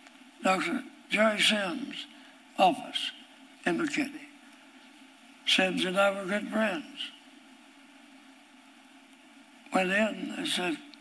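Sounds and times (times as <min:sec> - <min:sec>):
microphone hiss: 0:00.0 - 0:11.0.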